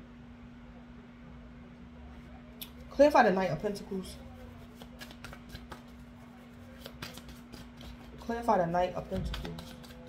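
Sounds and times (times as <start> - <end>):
faint steady hum: 0.0 - 10.0
cards being shuffled: 4.5 - 8.3, 9.0 - 10.0.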